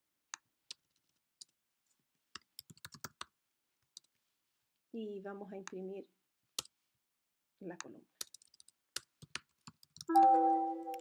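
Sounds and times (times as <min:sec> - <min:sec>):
computer keyboard typing: 0:02.4 - 0:03.3, 0:08.2 - 0:11.0.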